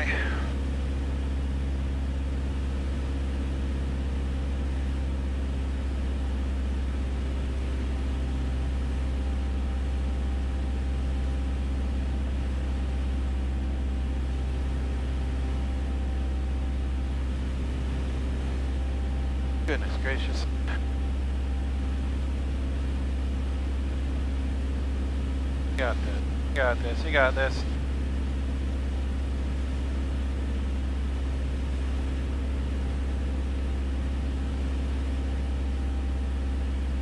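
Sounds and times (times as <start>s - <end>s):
propeller plane engine drone: 0.0s - 37.0s.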